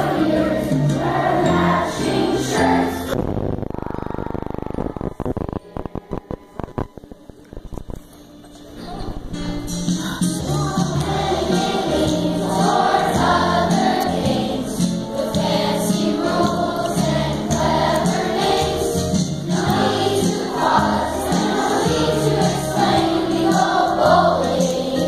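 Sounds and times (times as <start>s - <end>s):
children's choir singing: 0.0s - 3.2s, 8.8s - 25.0s
instrumental accompaniment: 3.9s - 25.0s.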